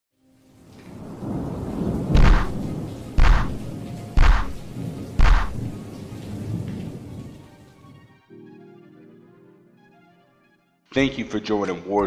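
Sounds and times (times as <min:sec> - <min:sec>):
hissing rain-like noise: 0:00.1 - 0:08.1.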